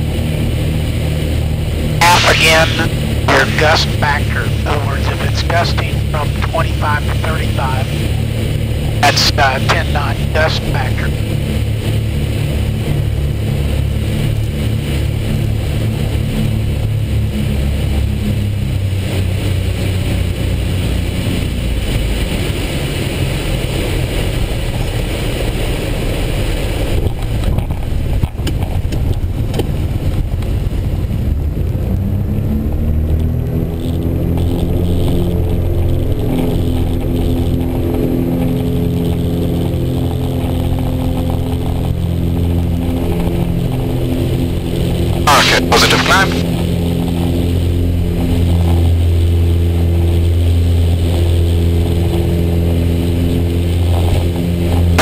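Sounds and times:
aircraft engines in cockpit: 0.0s - 55.0s.

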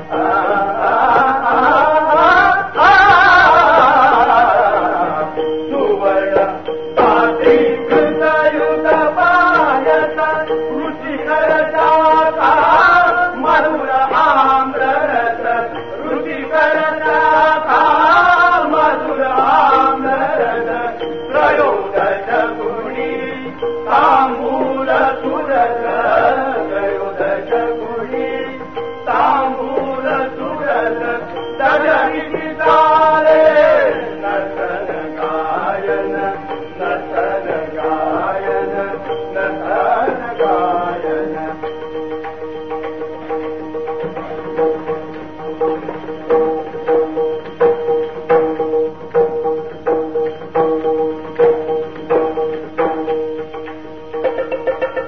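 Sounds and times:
person singing a chant: 0.0s - 42.2s
instrumental accompaniment: 0.0s - 55.0s
steady held drone: 0.0s - 55.0s.

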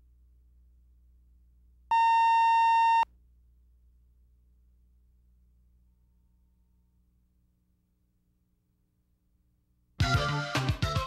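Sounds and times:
faint low hum: 0.0s - 10.0s
steady electronic beep: 1.9s - 3.0s.

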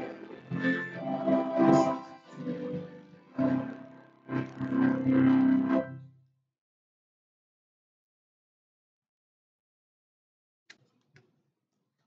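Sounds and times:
church choir singing: 0.0s - 3.9s.

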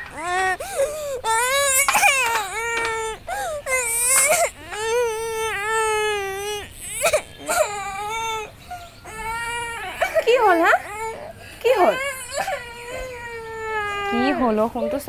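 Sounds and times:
young boy crying: 0.0s - 15.0s.

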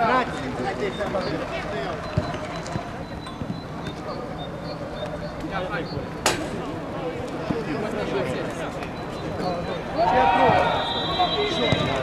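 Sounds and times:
players calling: 0.0s - 12.0s.

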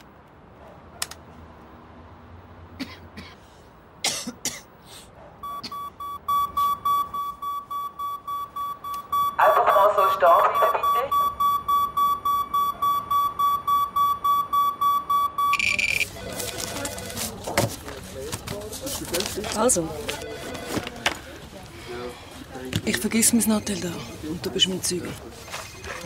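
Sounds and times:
rapid high-pitched alarm beeping: 5.4s - 16.5s.

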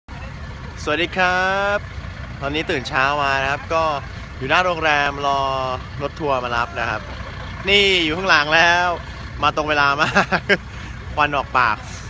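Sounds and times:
low steady rumble: 0.1s - 12.0s
man speaking: 0.8s - 1.8s, 2.4s - 10.2s.

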